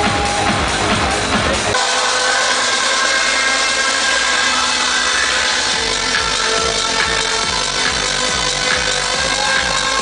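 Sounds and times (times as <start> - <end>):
bass: 0.0 - 10.0
crowd cheering: 0.0 - 10.0
trance music: 0.0 - 10.0.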